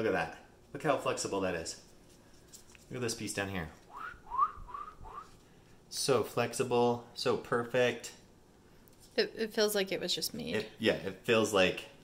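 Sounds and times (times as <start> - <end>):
person whistling rising notes: 3.9 - 5.4.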